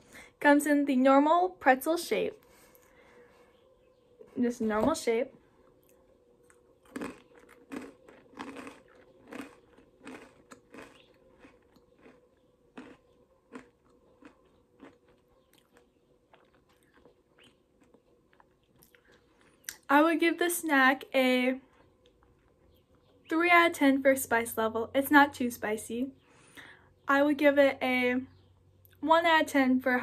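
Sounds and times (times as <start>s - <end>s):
chewing crunchy pretzel: 5.6s - 19.9s.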